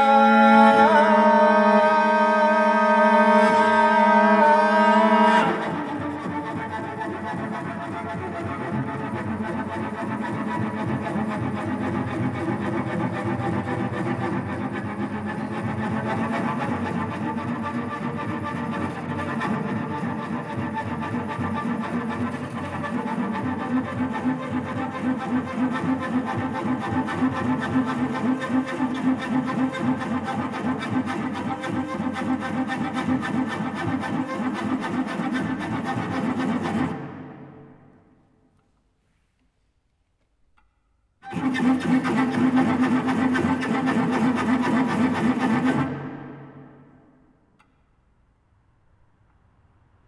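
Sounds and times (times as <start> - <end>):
bowed cello drone: 0.0 - 38.2, 41.2 - 47.8.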